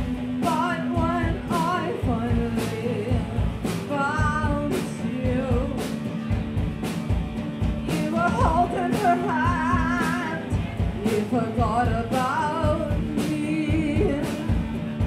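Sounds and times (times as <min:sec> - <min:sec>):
person singing: 0:00.0 - 0:06.0, 0:07.8 - 0:14.8
drum beat: 0:00.0 - 0:15.0
electric guitar: 0:00.0 - 0:15.0.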